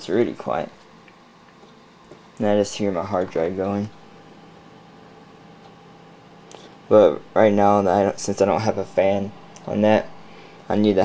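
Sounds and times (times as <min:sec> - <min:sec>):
hard drive spinning hum: 0:00.0 - 0:11.0.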